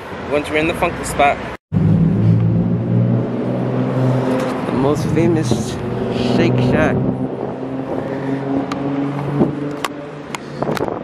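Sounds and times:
street traffic: 0:00.0 - 0:11.0
vehicle engine humming: 0:00.3 - 0:11.0.

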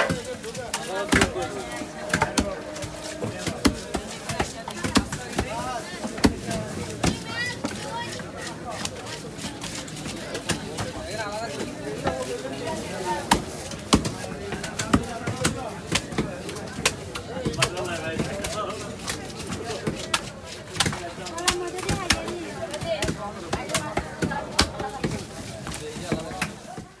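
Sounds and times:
voices chattering: 0:00.0 - 0:27.0.

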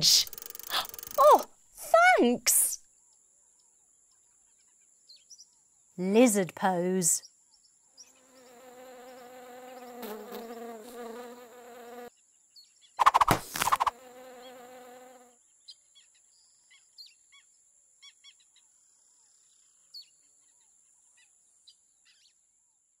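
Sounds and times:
housefly buzzing: 0:08.1 - 0:12.1, 0:13.0 - 0:15.4.

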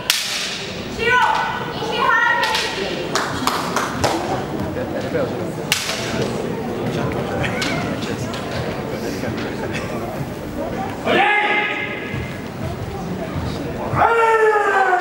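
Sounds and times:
bamboo swords striking: 0:00.0 - 0:01.4, 0:05.7 - 0:06.2
loud shouts: 0:01.0 - 0:02.8, 0:11.0 - 0:12.2, 0:13.9 - 0:15.0.

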